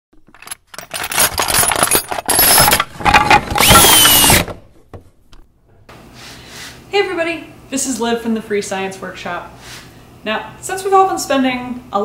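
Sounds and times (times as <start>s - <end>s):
mechanical whine: 2.7s - 4.6s.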